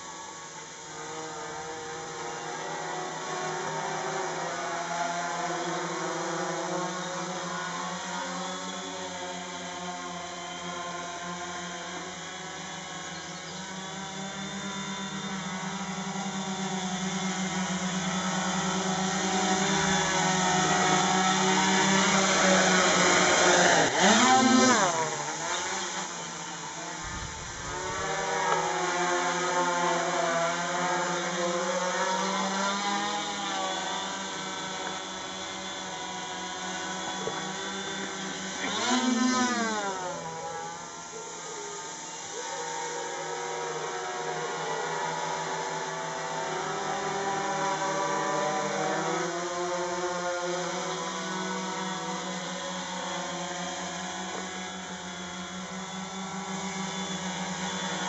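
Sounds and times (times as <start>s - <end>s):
quadcopter motors whining: 0.0s - 58.0s.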